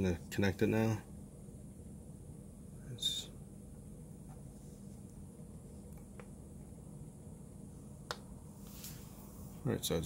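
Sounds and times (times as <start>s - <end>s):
soft rustle: 4.4s - 5.1s, 8.5s - 9.6s.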